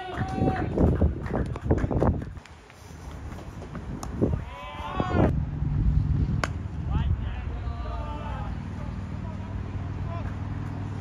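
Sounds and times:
person shouting: 4.4s - 5.3s
low steady rumble: 5.3s - 11.0s.

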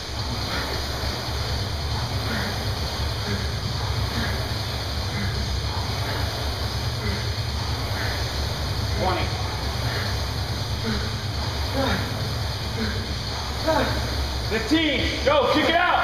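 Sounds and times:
rowing machine flywheel whirring: 0.0s - 16.0s.

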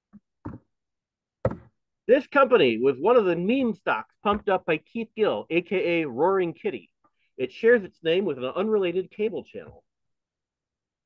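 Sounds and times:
soft knocks: 1.4s - 1.7s.

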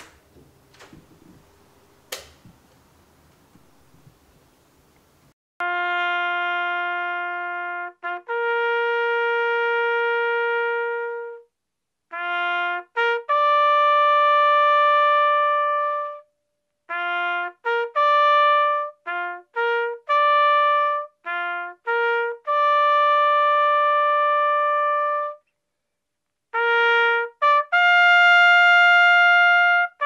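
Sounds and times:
brass instrument long note: 5.6s - 11.5s, 12.1s - 16.3s, 16.9s - 25.4s, 26.6s - 30.0s
trumpet playing: 5.6s - 11.5s, 12.1s - 16.3s, 16.9s - 25.4s, 26.5s - 30.0s.

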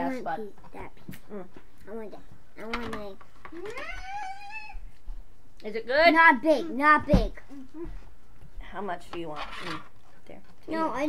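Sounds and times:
toddler vocalizing: 3.5s - 4.8s.

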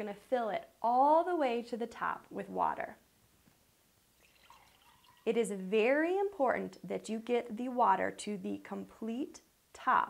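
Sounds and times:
water pouring into a glass: 4.2s - 5.4s.

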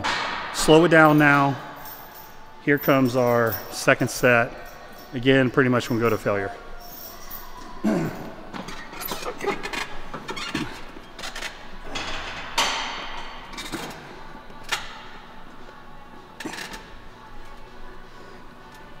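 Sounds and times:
background music: 0.0s - 19.0s
man clearing throat: 7.8s - 8.3s.

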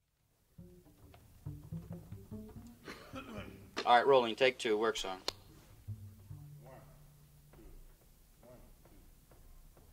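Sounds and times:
double bass notes: 0.5s - 3.9s, 5.3s - 9.9s.

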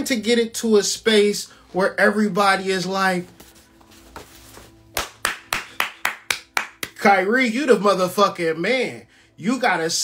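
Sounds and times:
hands clapping: 4.9s - 7.1s.

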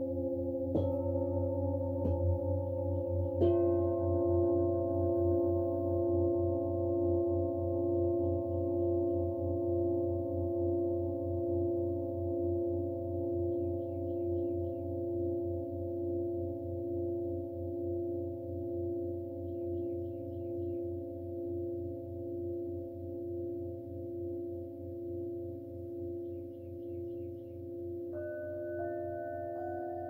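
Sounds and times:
metal singing bowl struck: 0.0s - 8.9s
singing bowls ringing: 0.0s - 30.0s.

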